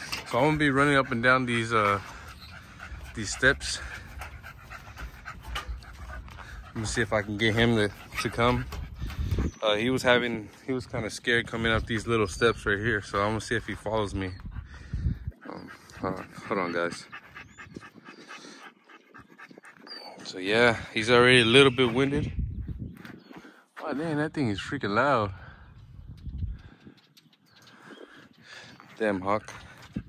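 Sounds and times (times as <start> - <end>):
dog panting quickly: 0.0 - 22.4, 23.4 - 24.7.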